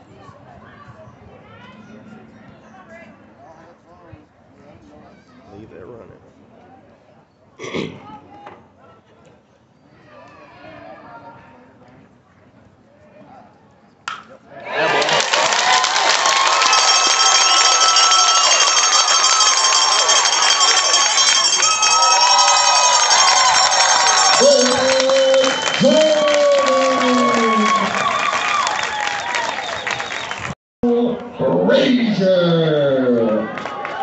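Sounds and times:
single voices yelling: 14.6s - 29.5s
crowd cheering and shouting: 14.6s - 30.1s, 30.9s - 34.0s.

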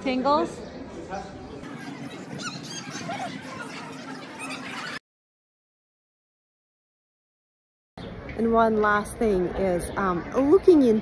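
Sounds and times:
murmur of voices: 0.0s - 5.0s.

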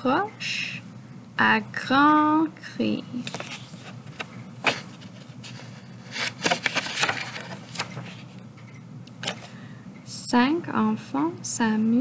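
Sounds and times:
book pages turning: 3.2s - 8.4s.

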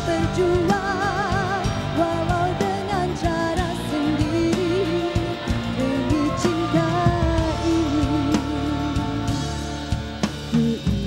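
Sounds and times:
held melody with vibrato: 0.0s - 10.5s
drum kit beat: 0.0s - 11.0s
live band music: 0.0s - 11.0s.

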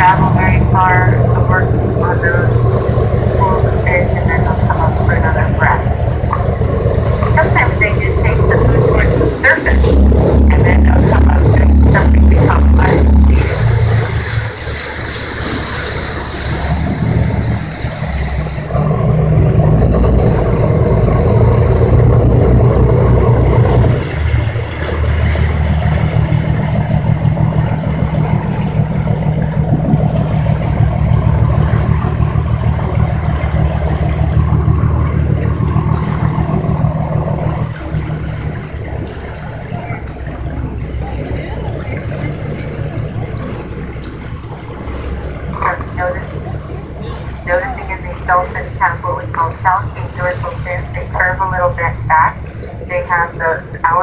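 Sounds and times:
boat engine running: 0.0s - 54.0s
water rushing along hull: 0.0s - 54.0s.

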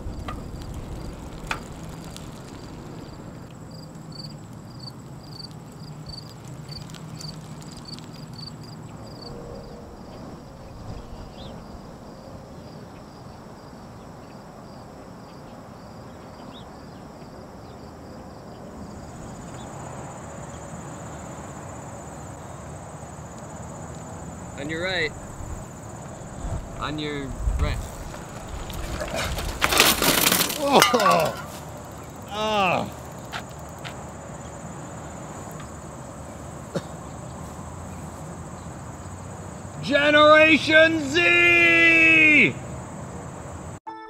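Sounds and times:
bicycle crashing on pavement: 0.0s - 3.4s, 27.8s - 33.0s
insects chirping: 0.0s - 43.8s
man exclaiming: 30.6s - 31.4s, 32.3s - 32.9s, 39.8s - 42.6s.

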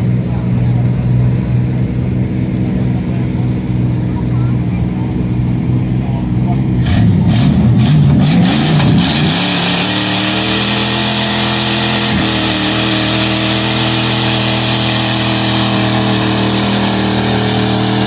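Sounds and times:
truck engine under heavy load: 0.0s - 18.0s.

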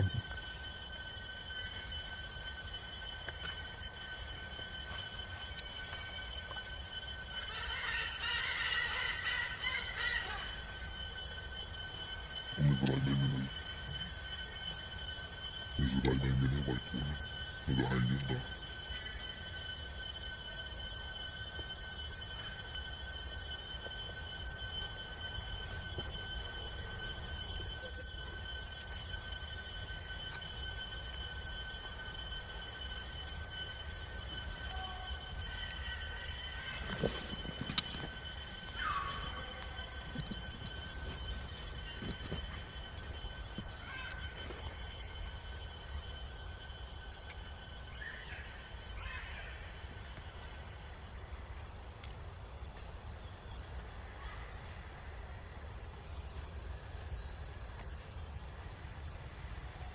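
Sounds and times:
high-pitched drone: 0.0s - 51.8s.

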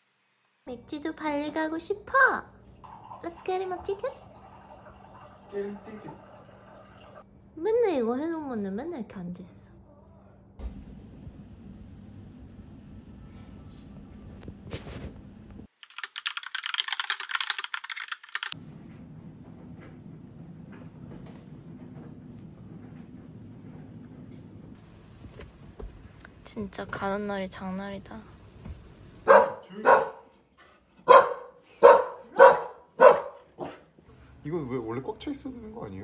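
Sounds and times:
low room hum: 0.6s - 15.7s, 18.2s - 36.0s
fast typing on a keyboard: 15.7s - 18.6s
small dog barking sharply: 29.3s - 30.3s, 31.0s - 33.8s.

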